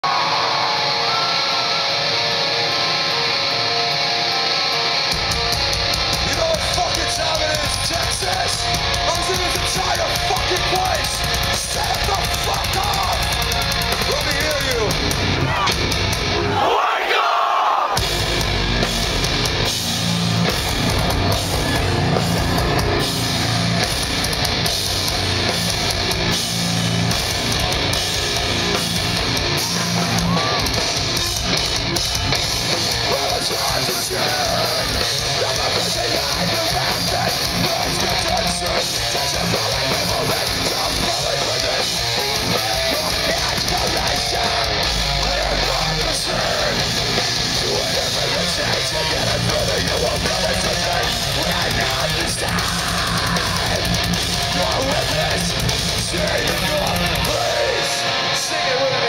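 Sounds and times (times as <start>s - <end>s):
live rock band playing: 0.0s - 16.7s, 17.9s - 59.0s.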